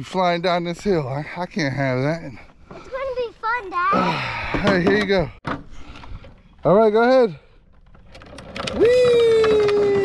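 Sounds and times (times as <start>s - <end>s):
plastic wheels rolling on asphalt: 5.8s - 10.0s
person shouting whee: 8.8s - 10.0s.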